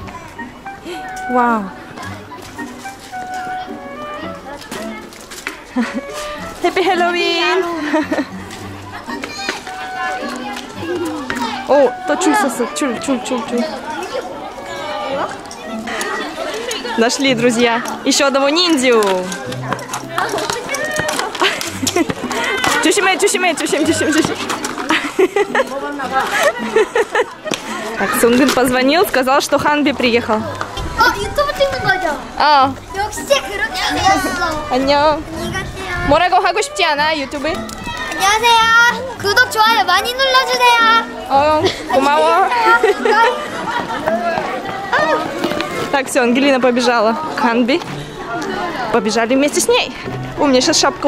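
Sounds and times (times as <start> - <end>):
overlapping chatter of voices: 0.0 - 51.0.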